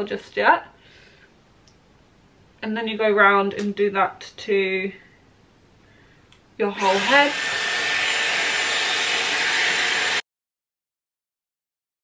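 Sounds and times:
hair styler blowing air: 6.7 - 10.2.

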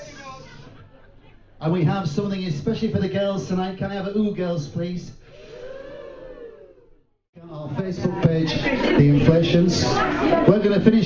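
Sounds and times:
audience of women going ooh: 5.4 - 7.0.

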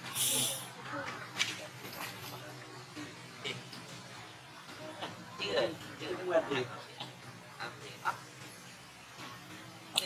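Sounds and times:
loud burst of hiss: 0.0 - 0.8
faint voices: 0.0 - 10.0.

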